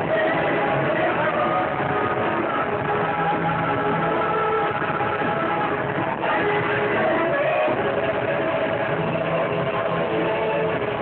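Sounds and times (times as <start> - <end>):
muffled loud music: 0.0 - 11.0.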